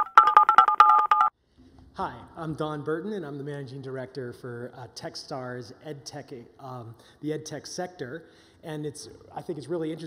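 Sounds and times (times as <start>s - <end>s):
two-tone beeps jingle: 0.0s - 1.3s.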